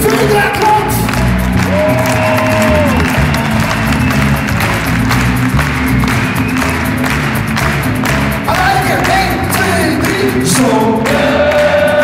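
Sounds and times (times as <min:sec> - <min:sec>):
audience applauding: 0:00.0 - 0:12.0
live band playing pop: 0:00.0 - 0:12.0.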